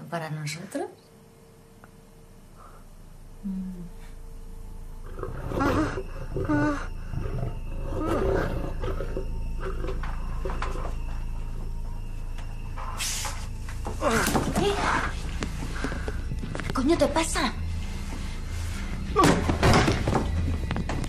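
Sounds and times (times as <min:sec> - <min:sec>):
steady low rumble: 0:14.7 - 0:19.1.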